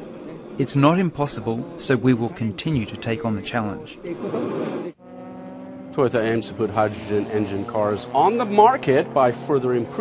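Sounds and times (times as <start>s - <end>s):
pit-lane background noise: 0.0s - 10.0s
race car engines running: 6.0s - 10.0s.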